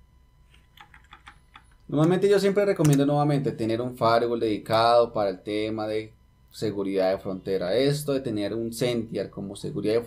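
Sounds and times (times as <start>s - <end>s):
keyboard typing: 0.5s - 2.2s.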